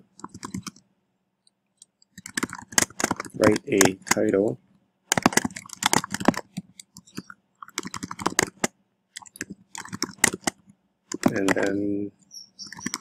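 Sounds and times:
typing on computer keyboard: 0.2s - 0.8s, 2.0s - 4.2s, 5.1s - 11.9s, 12.6s - 13.0s.

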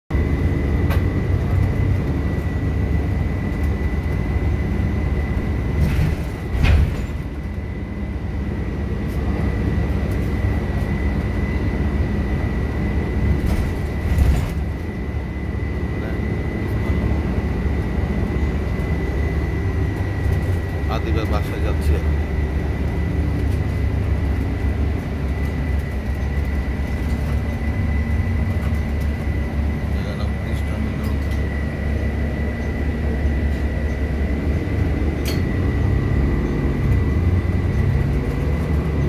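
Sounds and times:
bus engine and road rumble: 0.1s - 39.0s
bus bumps: 0.2s - 7.8s, 12.9s - 15.4s, 16.2s - 35.8s.

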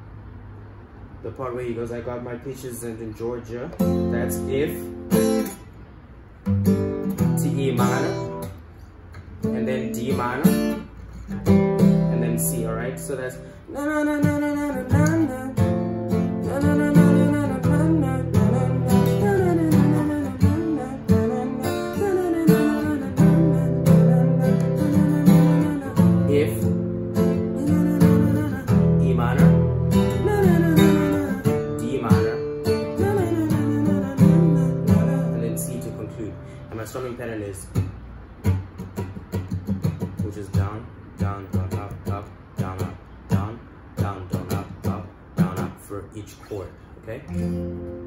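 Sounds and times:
acoustic guitar strumming: 3.8s - 45.9s, 47.2s - 48.0s.

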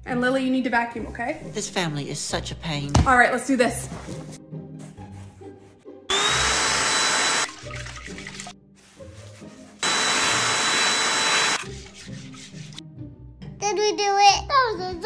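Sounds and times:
handheld vacuum cleaner running: 6.1s - 7.6s, 9.8s - 11.6s.

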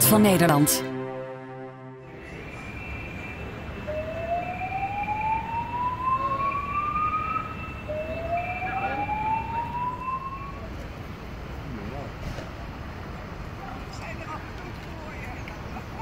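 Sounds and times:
slow-whoop evacuation alarm: 2.3s - 10.7s.

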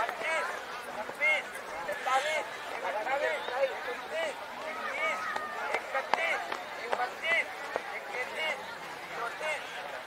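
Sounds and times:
men calling and chattering: 0.0s - 10.0s.

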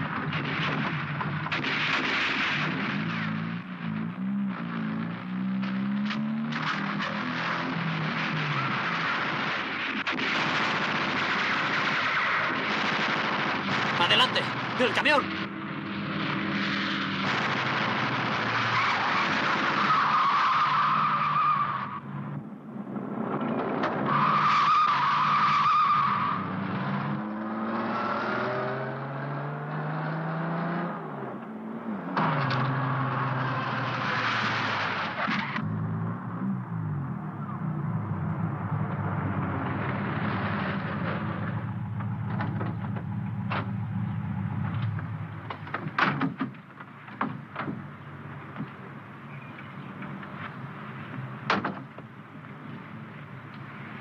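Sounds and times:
sharp cracks: 0.0s - 3.6s, 5.6s - 15.5s, 16.1s - 21.9s
car engine revving: 25.2s - 45.4s.

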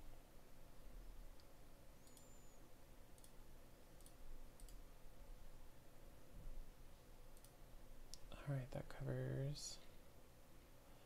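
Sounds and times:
faint computer mouse clicks: 1.4s - 2.5s, 3.1s - 3.4s, 4.0s - 4.8s, 7.3s - 8.3s.

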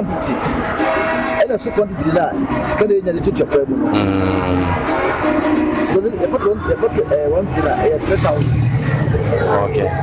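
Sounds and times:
man talking: 3.9s - 4.8s.

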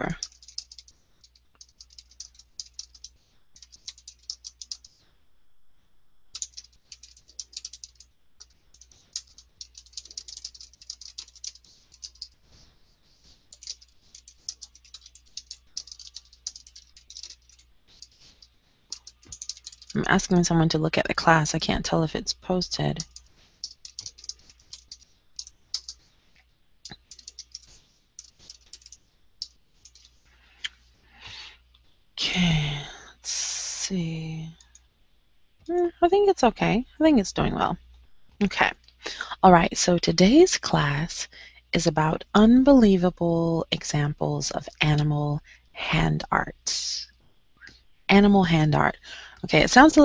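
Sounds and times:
fast typing on keyboard: 0.0s - 5.0s, 6.3s - 26.0s, 26.9s - 30.2s.

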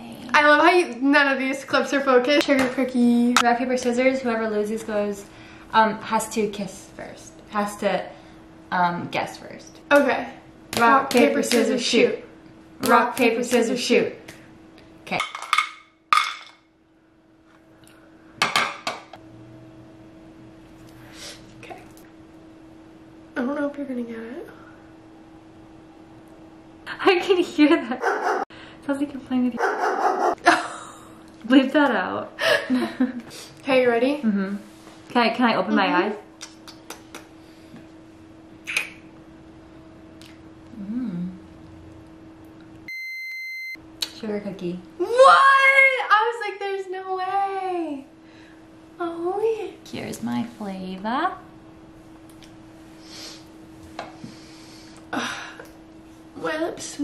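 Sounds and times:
faint steady hum: 0.0s - 57.0s
electronic bleep tone: 42.9s - 43.8s.

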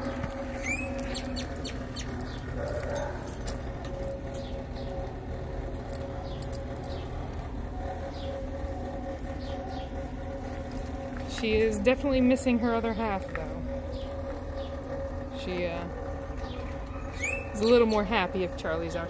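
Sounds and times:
birds chirping: 0.0s - 19.0s
steady hum: 0.0s - 19.0s.

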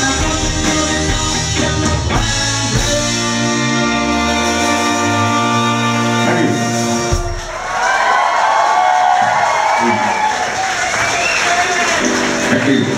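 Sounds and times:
rock band held chord: 0.0s - 7.9s
audience cheering and applauding: 7.2s - 12.9s.

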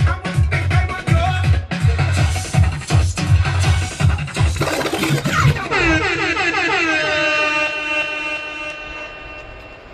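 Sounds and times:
dance music beat: 0.0s - 6.9s
long horn-like chord: 7.0s - 9.6s.

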